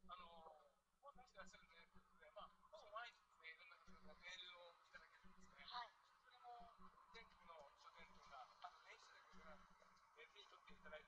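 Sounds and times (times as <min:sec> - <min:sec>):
man talking: 0:00.0 - 0:09.6, 0:10.2 - 0:11.0.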